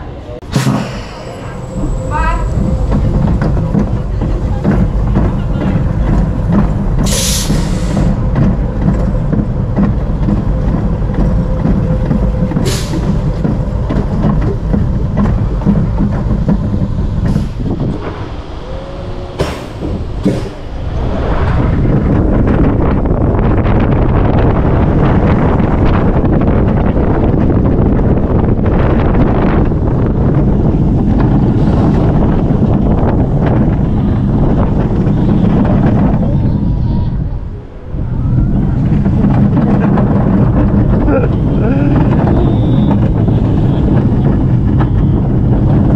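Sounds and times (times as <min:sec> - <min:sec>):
roller coaster lift rumble: 0:00.0 - 0:45.9
wheels rushing on track: 0:00.0 - 0:45.9.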